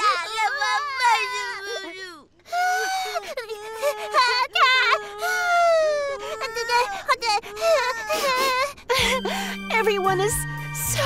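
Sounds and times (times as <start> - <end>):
cartoon babies crying: 0.0 - 9.5.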